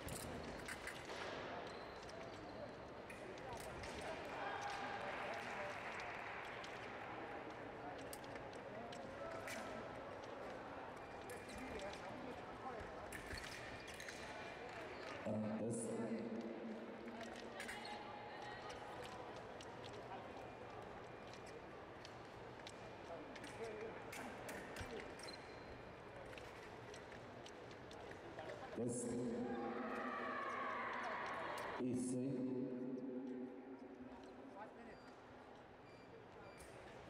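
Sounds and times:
fencing footwork and blade clicks: 0:00.0 - 0:06.9, 0:07.5 - 0:15.2, 0:16.4 - 0:28.7
arena chatter: 0:01.2 - 0:37.0.

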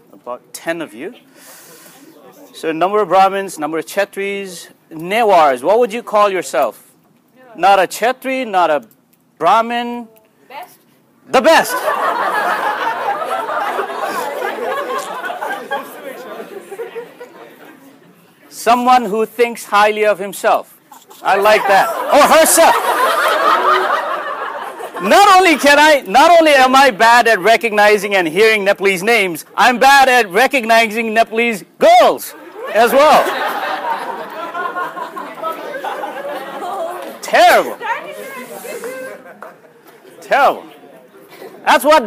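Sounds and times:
students chattering: 0:01.2 - 0:02.6, 0:11.8 - 0:18.6, 0:20.8 - 0:26.0, 0:32.3 - 0:41.6.

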